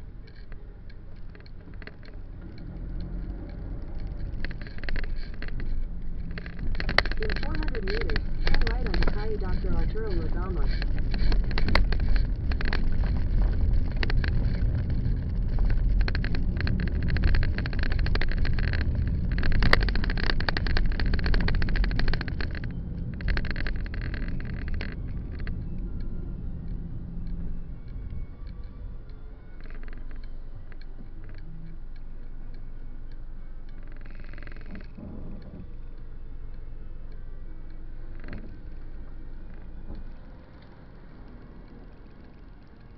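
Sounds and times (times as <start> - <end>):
car road rumble: 0.0 - 42.9
low steady hum: 0.0 - 42.9
rattles and knocks in car: 1.2 - 25.8.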